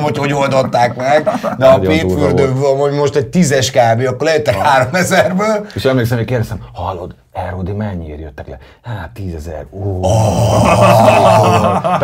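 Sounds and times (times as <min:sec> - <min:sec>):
men exclaiming ooh together: 0:10.0 - 0:12.0.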